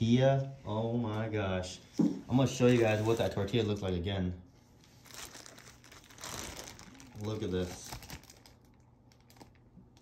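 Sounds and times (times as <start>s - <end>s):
crinkling rustling handling noise: 2.3s - 10.0s.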